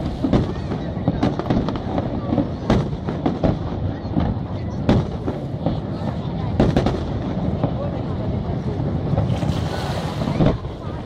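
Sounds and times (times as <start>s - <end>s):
fireworks bangs: 0.0s - 11.0s
fireworks rumble: 0.0s - 11.0s.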